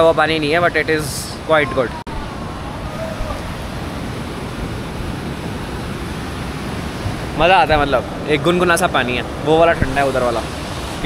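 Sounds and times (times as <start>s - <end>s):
water flowing: 0.0s - 11.0s.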